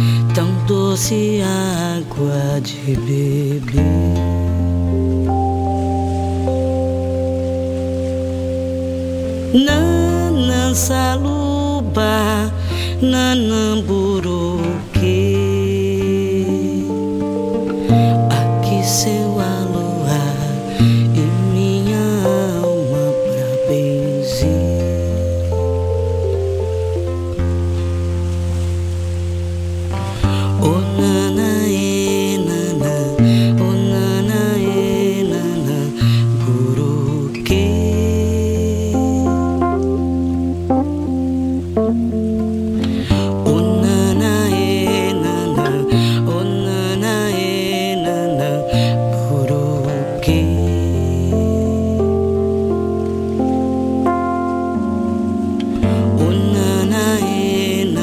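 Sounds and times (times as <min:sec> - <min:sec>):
live band sustained chords: 0:00.0 - 0:58.0
low held bass note: 0:03.7 - 0:32.1, 0:33.1 - 0:47.0.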